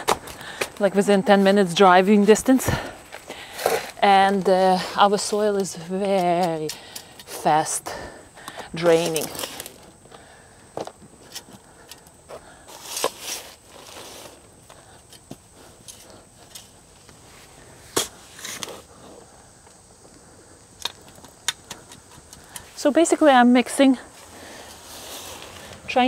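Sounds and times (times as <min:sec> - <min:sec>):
metal shovel digging soil: 0:03.4 - 0:07.9, 0:08.7 - 0:09.9, 0:12.7 - 0:14.4, 0:17.9 - 0:18.9.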